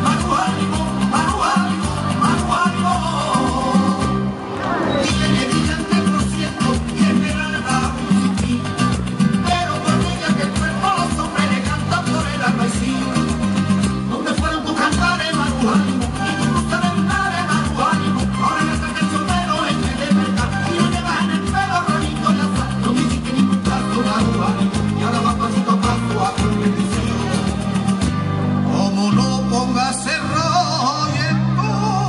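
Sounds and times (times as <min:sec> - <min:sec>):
latin dance music over loudspeakers: 0:00.0 - 0:32.0.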